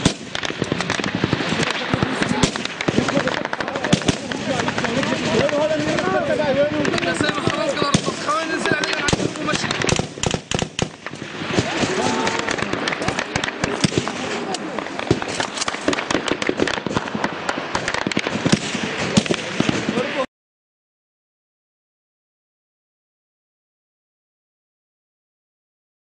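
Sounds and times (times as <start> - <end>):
dense gunfire: 0.0 - 20.2
voices: 1.3 - 10.0, 11.4 - 15.9.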